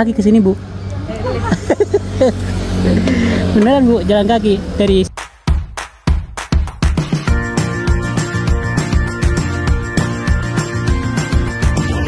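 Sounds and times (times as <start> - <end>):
vehicle engine rumbling: 0.0 - 5.1
voices: 0.0 - 5.1.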